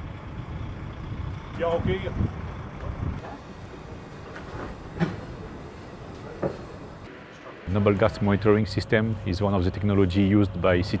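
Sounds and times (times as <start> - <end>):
lorry diesel engine rumbling: 0.0 - 11.0.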